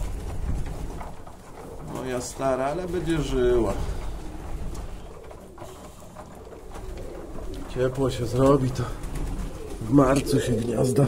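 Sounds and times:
pigeons cooing: 0:00.0 - 0:11.0.

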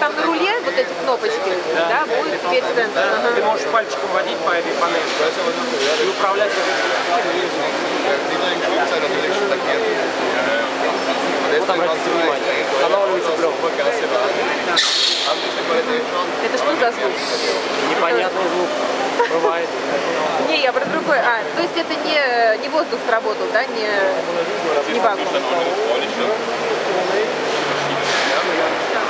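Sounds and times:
voices talking: 0:00.0 - 0:29.0.

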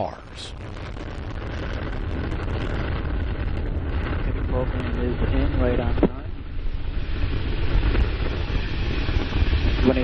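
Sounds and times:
rocket engine deep rumble: 0:00.0 - 0:10.0.

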